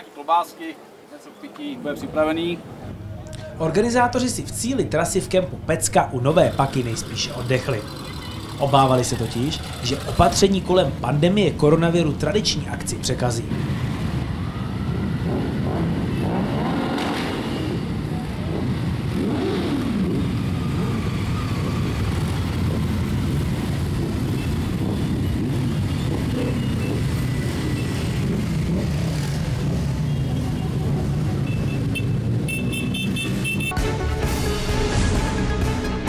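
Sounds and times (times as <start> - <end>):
motorcycles riding past: 6.2 - 11.1, 13.5 - 33.7.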